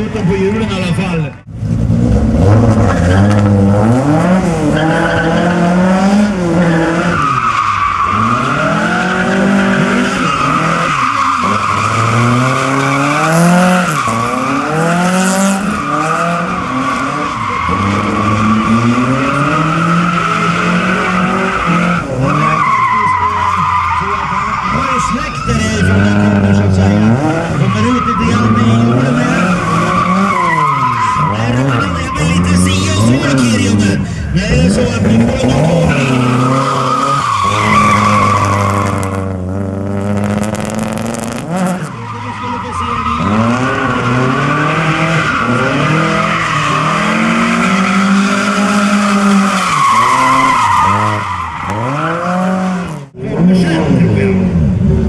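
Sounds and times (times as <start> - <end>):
car engine revving: 0.0 - 55.0
tyres squealing: 6.5 - 39.5, 40.2 - 52.6.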